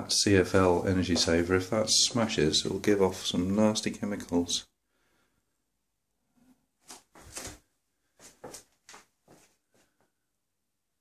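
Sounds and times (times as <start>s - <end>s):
soft rustles and knocks: 6.8s - 10.1s.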